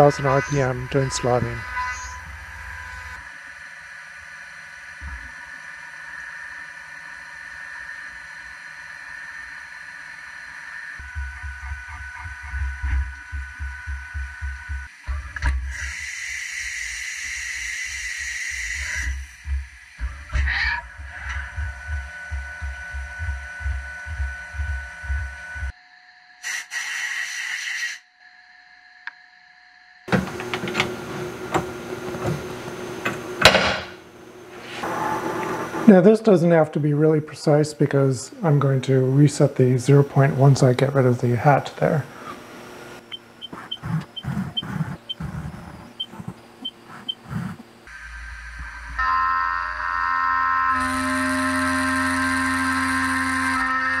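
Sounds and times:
mill spindle and cutting tones: 0.0s - 25.7s, 30.1s - 36.0s, 38.4s - 54.0s
pulsing low rumble: 11.0s - 14.9s, 18.9s - 25.7s.

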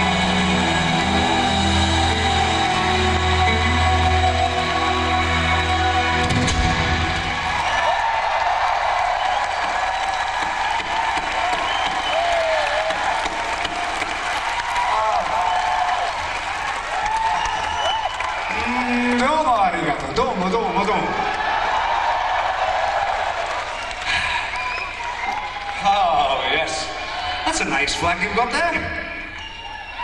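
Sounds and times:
crowd cheering and applauding: 0.0s - 30.0s
shrill whistles: 9.1s - 12.9s, 17.1s - 18.8s, 23.7s - 25.8s, 29.0s - 30.0s.

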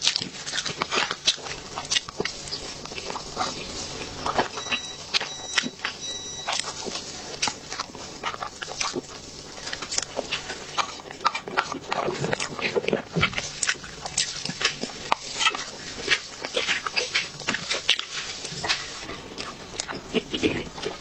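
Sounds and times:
chewing and lip smacks: 0.0s - 21.0s.

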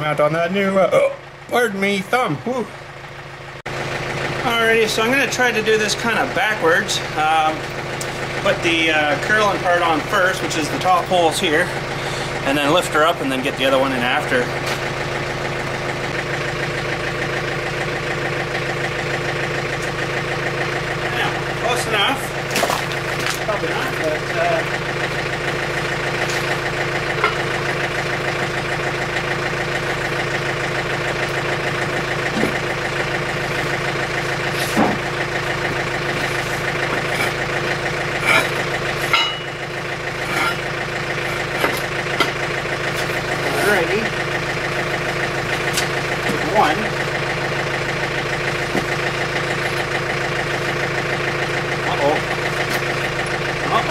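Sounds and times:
diesel engine idling: 0.0s - 53.9s
sharp metal clanks: 38.2s - 39.6s.

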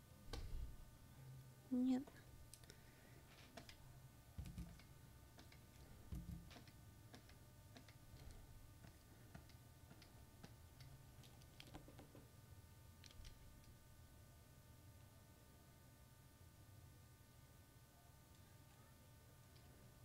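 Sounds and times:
faint room hum: 0.0s - 20.0s.

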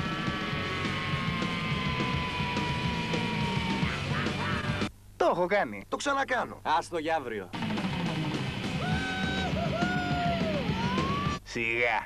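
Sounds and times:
rock music: 0.0s - 4.9s, 7.5s - 11.4s.

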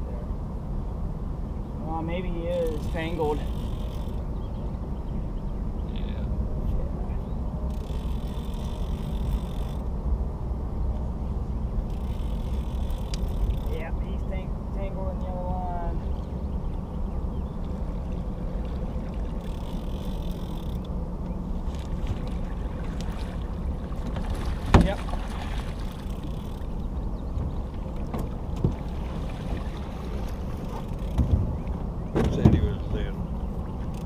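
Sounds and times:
wind and water wash: 0.0s - 34.0s
knocks on boat: 24.0s - 25.3s, 27.4s - 29.6s, 31.1s - 32.8s.

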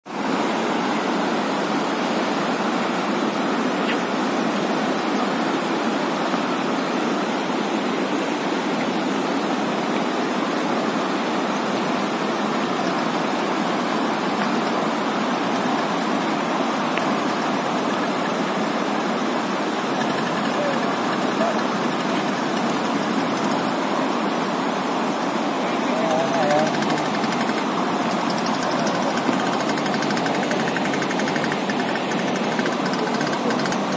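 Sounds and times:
meltwater stream rushing over rocks: 0.1s - 33.9s.

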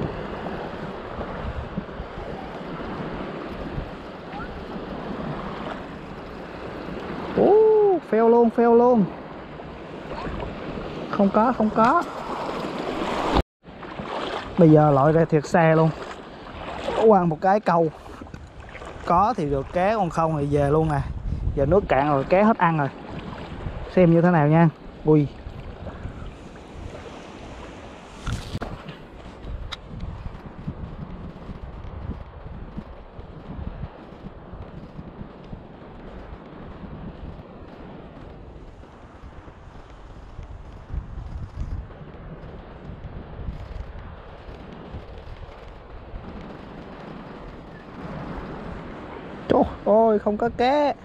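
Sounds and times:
water lapping: 0.0s - 7.5s, 9.0s - 30.8s
wind buffeting microphone: 0.0s - 51.0s.

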